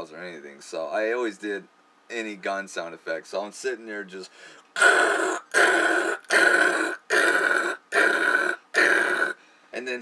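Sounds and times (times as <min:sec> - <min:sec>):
man imitating gunfire with mouth: 0:04.8 - 0:09.4.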